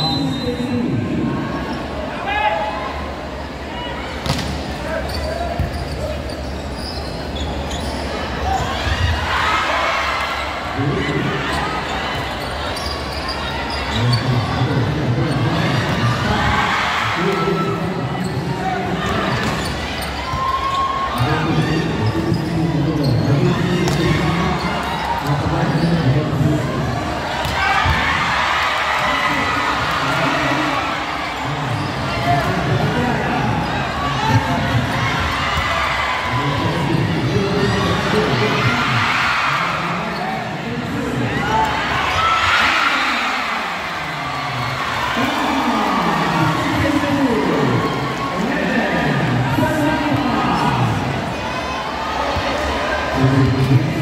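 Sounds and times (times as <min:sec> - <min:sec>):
chatter and shouts: 0:00.0 - 0:54.0.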